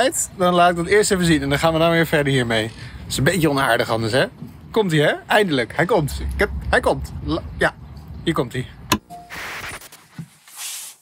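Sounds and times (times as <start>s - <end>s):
brief beep: 9.0s - 9.4s.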